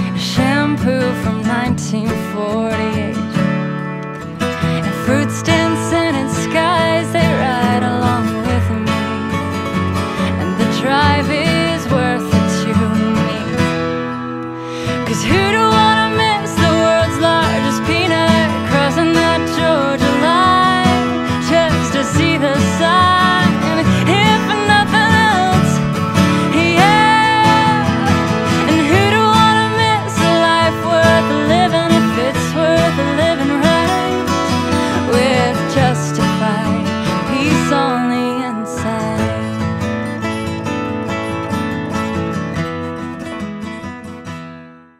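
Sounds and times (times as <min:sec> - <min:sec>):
country song with acoustic guitar: 0:00.0 - 0:44.9.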